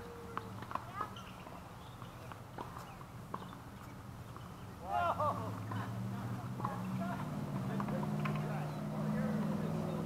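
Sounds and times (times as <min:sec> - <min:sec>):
outdoor background noise: 0:00.0 - 0:10.0
tennis ball bouncing: 0:06.6 - 0:08.5.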